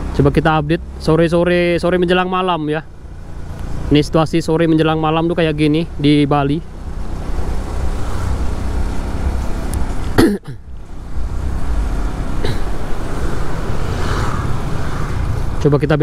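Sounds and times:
motorcycle road noise: 0.0s - 16.0s.

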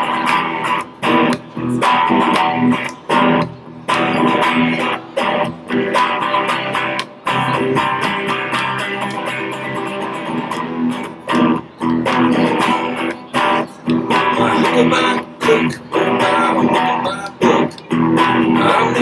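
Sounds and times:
electric guitar strumming choked chords: 0.0s - 19.0s.

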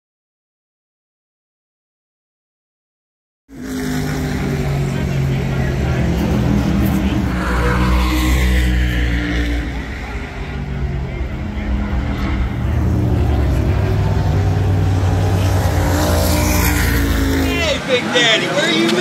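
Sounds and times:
higher engine sound: 3.5s - 18.1s
race car engines rumbling: 3.5s - 19.0s
voices: 3.6s - 19.0s.

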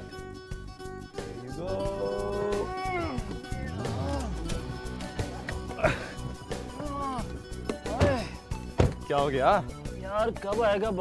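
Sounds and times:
wailing melodic music: 0.2s - 10.4s.

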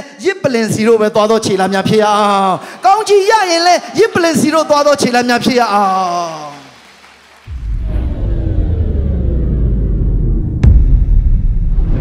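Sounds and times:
tones sliding downward: 7.5s - 10.6s
deep steady rumble: 7.5s - 12.0s.

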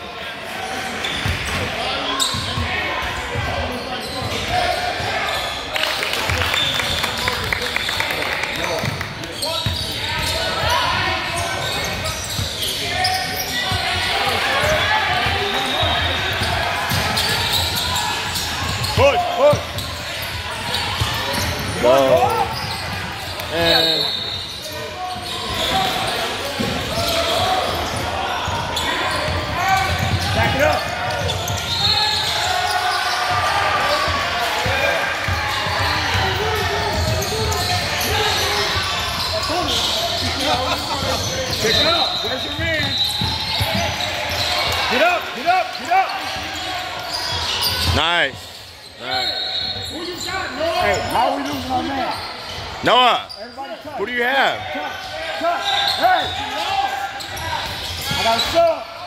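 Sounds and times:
sneakers squeaking on court: 1.0s - 5.7s, 8.8s - 58.6s.

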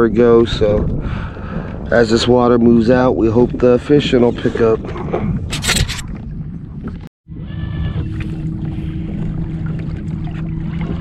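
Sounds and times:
water noise: 0.0s - 11.0s
wind: 0.0s - 11.0s.

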